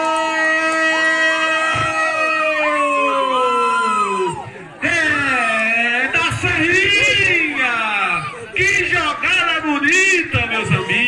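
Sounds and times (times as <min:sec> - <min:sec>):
spectators cheering: 0:00.0 - 0:11.0.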